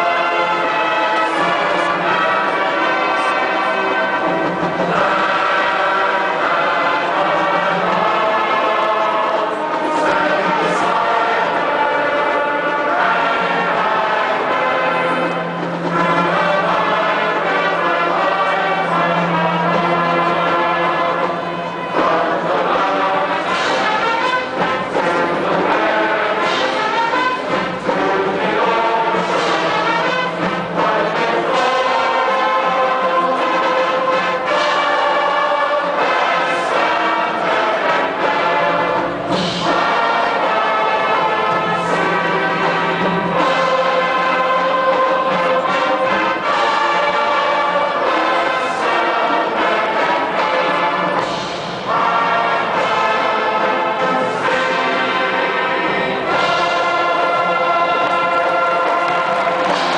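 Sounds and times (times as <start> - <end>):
men's choir singing held chords: 0.0 - 59.9.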